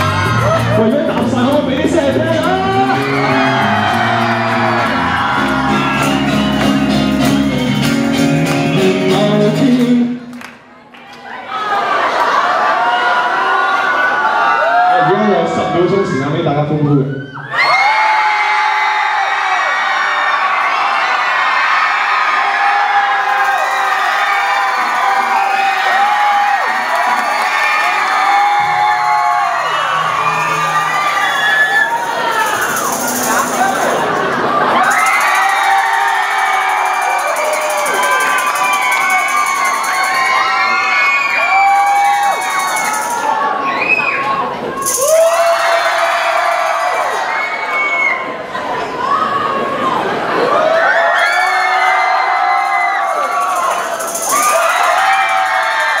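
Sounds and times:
electric bass: 0:00.0 - 0:10.0
crowd cheering and whooping: 0:00.0 - 0:10.2, 0:10.9 - 0:56.0
acoustic guitars: 0:00.0 - 0:10.3.

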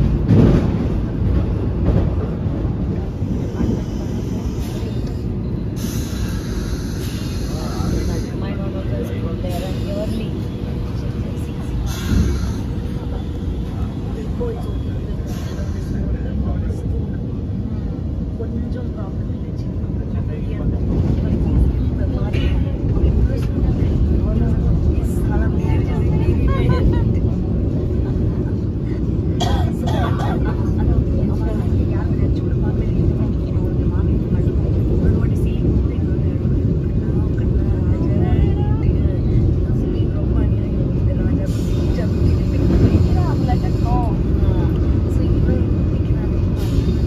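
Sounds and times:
faint passenger voices: 0:00.0 - 0:47.0
train rumbling on track: 0:00.0 - 0:47.0.

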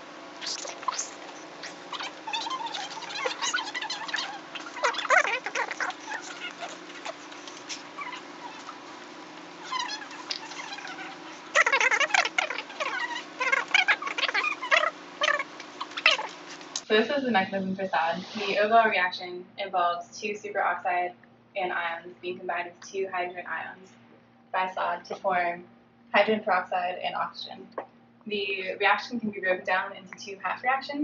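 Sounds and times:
marker squeaking on whiteboard: 0:00.4 - 0:08.9, 0:09.6 - 0:16.7.

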